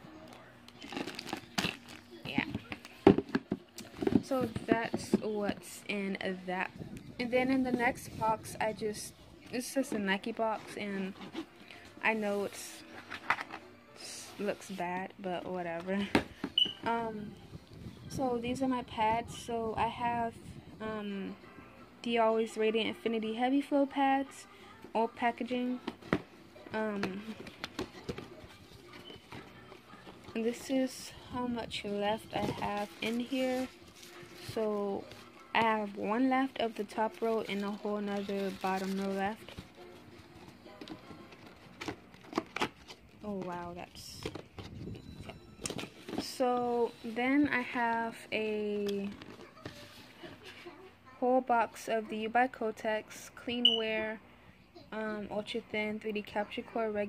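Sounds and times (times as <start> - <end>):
plastic wrapping crinkling: 0.7 - 3.0, 36.9 - 43.6.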